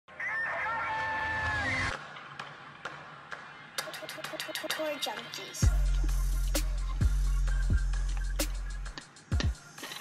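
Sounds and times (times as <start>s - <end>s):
busy music beat: 2.4s - 10.0s.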